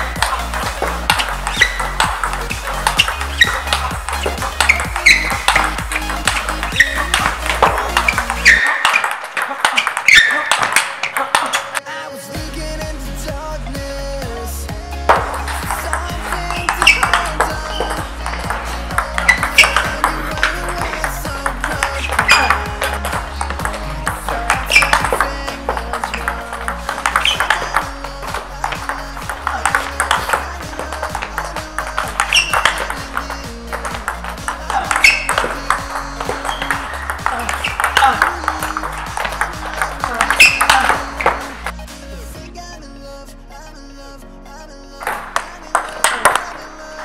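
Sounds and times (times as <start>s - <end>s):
balls bouncing on table: 0.0s - 11.8s, 15.1s - 41.8s, 45.0s - 46.6s
bats hitting table tennis balls: 0.0s - 11.8s, 15.1s - 41.8s, 45.0s - 46.6s
electronic music with steady beat: 0.0s - 47.0s.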